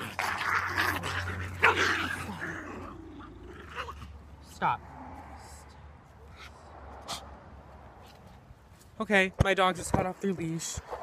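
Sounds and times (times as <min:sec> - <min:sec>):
dogs growling and scuffling: 0:00.0 - 0:04.2.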